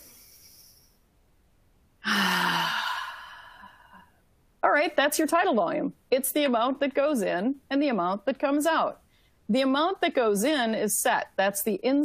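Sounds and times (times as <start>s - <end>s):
woman breathing in: 2.0s - 4.2s.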